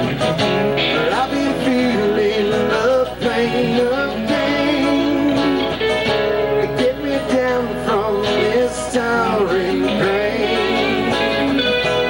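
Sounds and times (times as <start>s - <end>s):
lead guitar bending pitch: 0.0s - 12.0s
live rock band playing: 0.0s - 12.0s.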